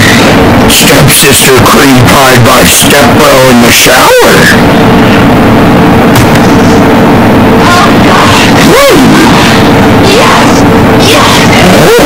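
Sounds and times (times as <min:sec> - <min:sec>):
loud distorted noise: 0:00.0 - 0:12.0.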